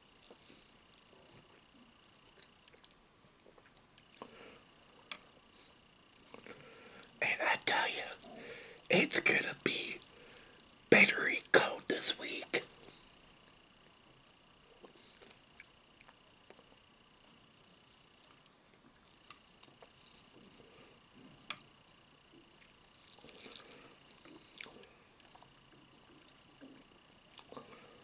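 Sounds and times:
quiet chewing: 0.1s - 11.1s, 13.8s - 16.8s, 17.5s - 28.0s
person whispering: 7.2s - 10.0s, 10.9s - 12.7s
crisp fried chicken tearing: 23.0s - 23.9s.

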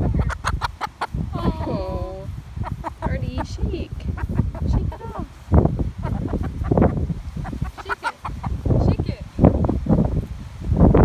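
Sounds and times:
hen clucking: 0.0s - 9.4s.

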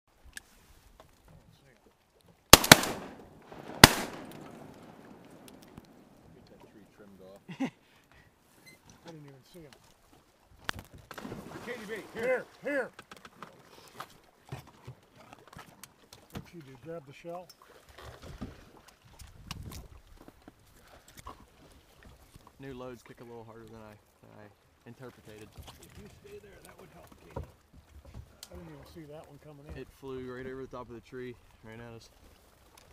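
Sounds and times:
shotgun shots with echo: 2.6s - 5.8s.

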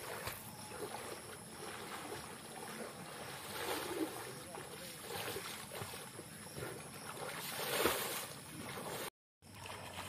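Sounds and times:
water splashing from swimming: 0.0s - 10.0s.

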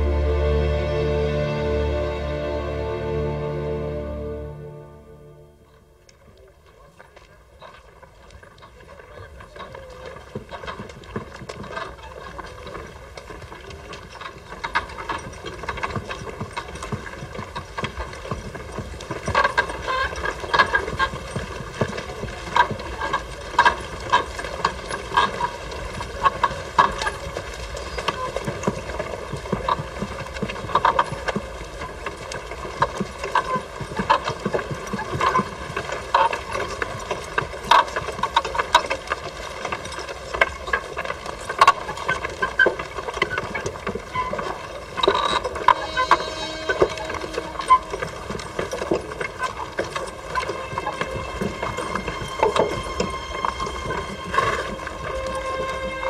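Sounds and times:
low rumble: 0.0s - 6.0s
horse hooves clip-clopping: 0.0s - 56.0s.

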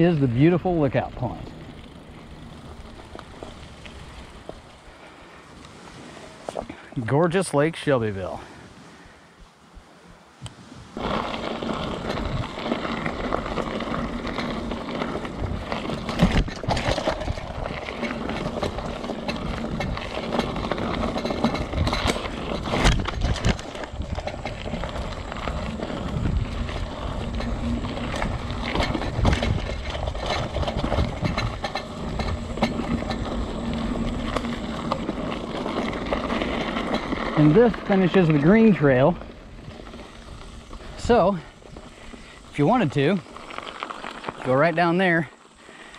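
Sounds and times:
bike tyres rumbling over gravel: 0.0s - 9.0s, 9.8s - 45.9s
bike knocking over bumps: 11.0s - 42.3s.

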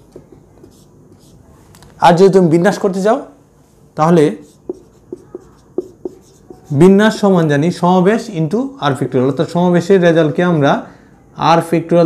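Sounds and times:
marker writing on whiteboard: 0.0s - 1.4s, 4.3s - 7.2s.

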